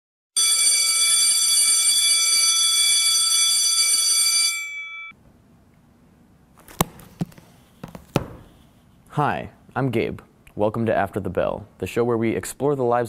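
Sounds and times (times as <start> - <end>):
electric bell ringing: 0.4 - 5.2.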